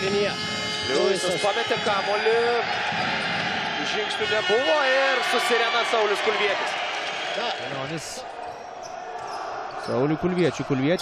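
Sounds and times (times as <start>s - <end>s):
crowd noise: 0.0s - 11.0s.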